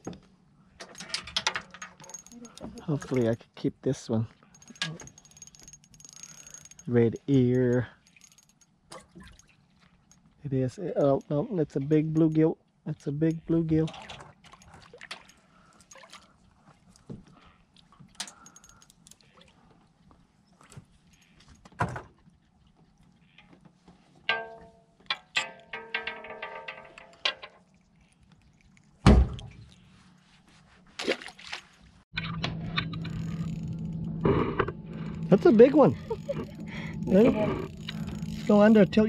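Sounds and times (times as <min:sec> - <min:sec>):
clicks and knocks in aluminium boat: 0:23.2 - 0:27.7
steady low hum: 0:32.2 - 0:39.0.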